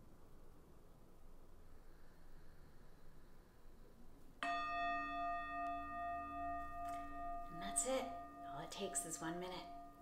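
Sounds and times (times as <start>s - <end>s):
meditation bell ringing: 4.4s - 10.0s.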